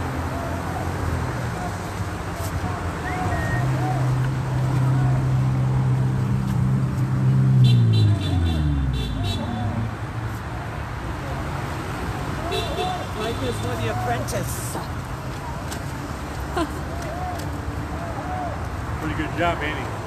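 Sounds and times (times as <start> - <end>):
vehicle engine passing by: 0.0 - 10.4
traffic noise: 0.0 - 20.0.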